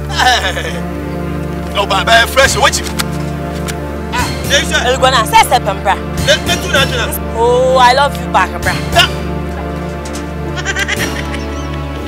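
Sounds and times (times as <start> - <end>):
background music with bass line: 0.0 - 12.0
wavering bleat-like cry: 10.5 - 11.7.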